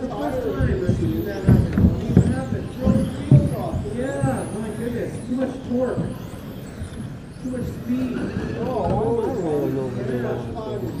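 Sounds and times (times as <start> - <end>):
high-pitched electric motor whine: 0.0 - 11.0
voices: 0.0 - 11.0
dull thumps: 0.6 - 4.5.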